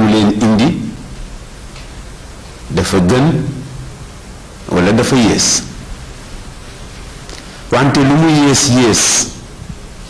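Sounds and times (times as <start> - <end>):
man's voice: 0.0 - 1.0, 7.7 - 9.4
steady hiss: 0.0 - 10.0.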